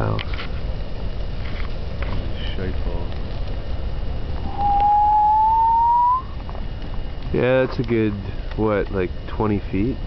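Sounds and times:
fire burning with low rumble: 0.0s - 10.0s
whistling tone rising in pitch: 4.4s - 6.4s.

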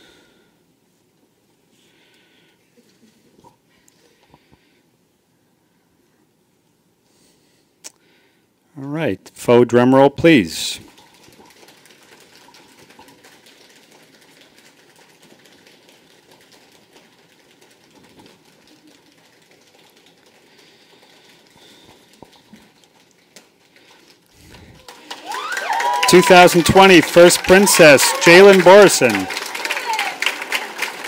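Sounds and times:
rapid drumroll patter: 10.5s - 31.0s.

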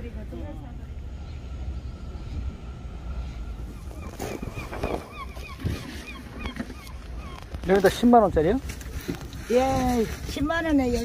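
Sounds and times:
low outdoor rumble: 0.0s - 11.0s
bird calling in repeated notes: 3.2s - 8.0s.

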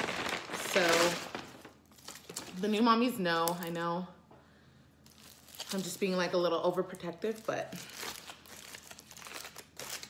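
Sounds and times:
aluminium foil crinkling: 0.0s - 3.8s, 5.0s - 10.0s.

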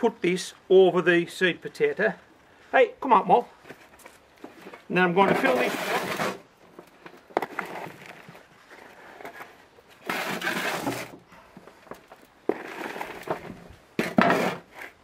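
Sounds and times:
shovel scraping and pouring soil: 4.5s - 6.5s, 7.3s - 11.2s, 12.4s - 15.0s.

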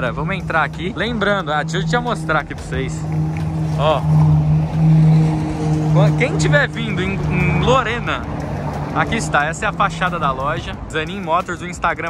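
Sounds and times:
engine humming steadily: 0.0s - 12.0s.

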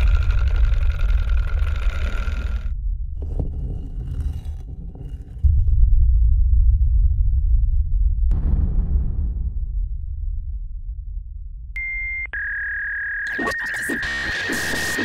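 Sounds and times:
deep cinematic drone rumble: 0.0s - 12.3s.

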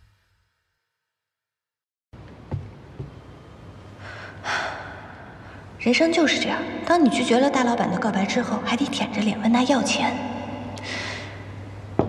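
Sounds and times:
faint low hum: 2.2s - 12.0s
woman breathing in deeply: 4.0s - 5.8s, 10.8s - 11.8s.

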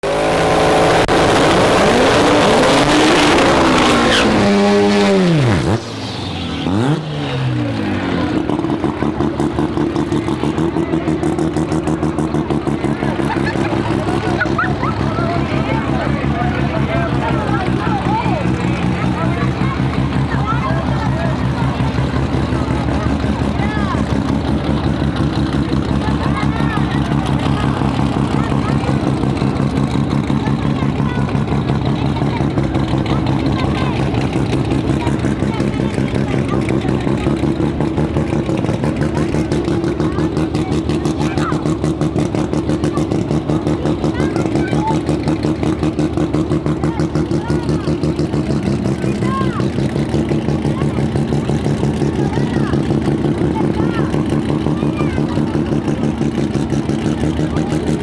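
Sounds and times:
racing car engine idling loudly: 0.0s - 58.0s.

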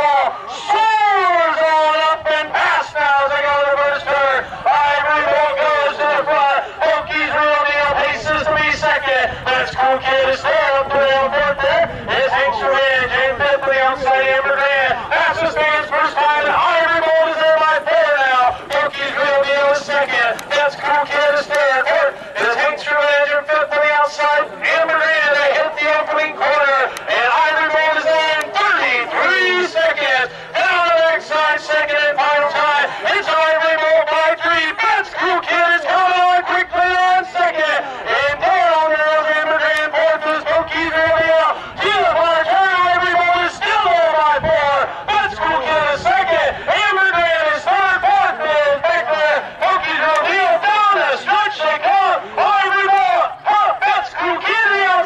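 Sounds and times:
race announcer talking fast: 0.0s - 55.0s.

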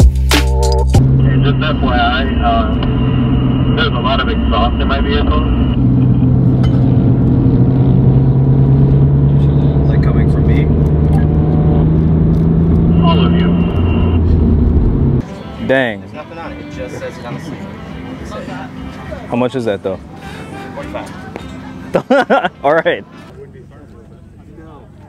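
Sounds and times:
car engine accelerating: 0.0s - 22.4s
road noise: 0.0s - 25.0s
voices: 1.2s - 6.3s, 12.9s - 14.2s, 15.2s - 25.0s.

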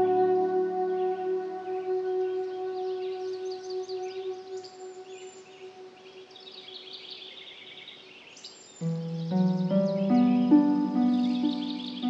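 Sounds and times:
loud musical chord: 0.0s - 5.6s, 8.9s - 12.0s
birds chirping: 0.0s - 12.0s.

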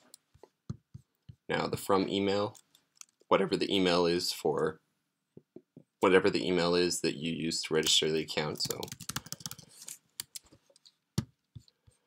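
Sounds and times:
computer keyboard keystrokes: 8.6s - 9.6s.

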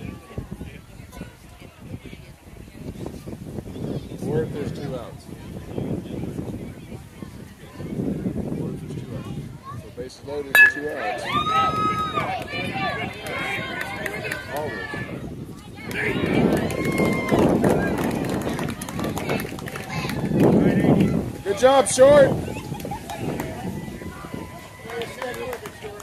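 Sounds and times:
bat hitting baseball: 10.6s - 11.6s.

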